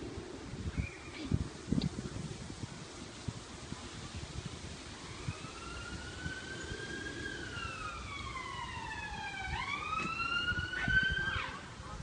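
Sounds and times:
emergency siren wailing: 5.0s - 11.8s.

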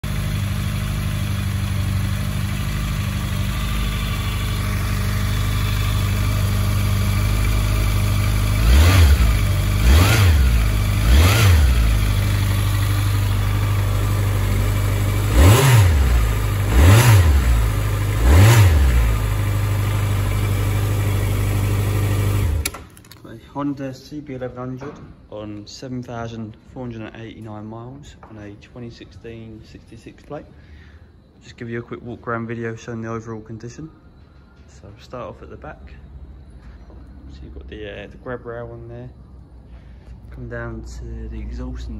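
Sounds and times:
motorcycle engine idling: 0.0s - 22.7s
engine revving: 0.0s - 22.8s.

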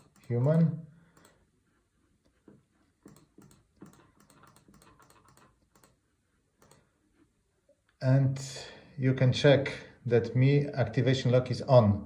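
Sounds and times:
laptop clicking: 0.0s - 1.4s, 3.0s - 6.0s, 6.6s - 6.9s.

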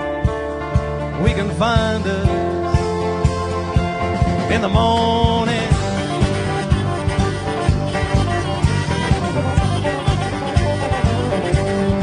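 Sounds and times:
country band playing: 0.0s - 12.0s.

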